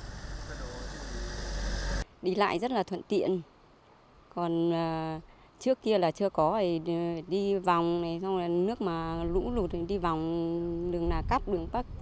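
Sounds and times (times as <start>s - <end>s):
truck engine and tyre rumble: 0.0s - 2.0s.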